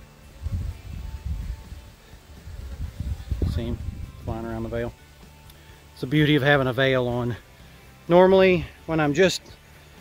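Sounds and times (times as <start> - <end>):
faint background music: 0.0 - 10.0
low rumbling on microphone: 0.4 - 4.9.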